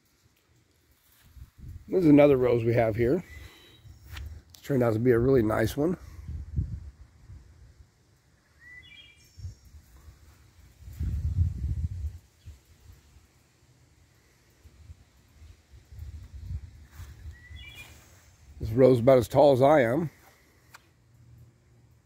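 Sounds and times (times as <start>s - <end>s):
low rumble on microphone: 1.2s - 2.0s, 6.0s - 7.8s, 9.4s - 12.6s
small bird chirping: 8.6s - 9.9s, 16.4s - 18.5s.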